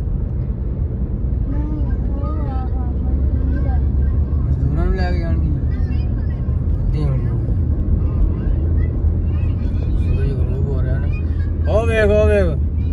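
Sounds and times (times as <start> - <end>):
car interior road and engine rumble: 0.0 - 12.9.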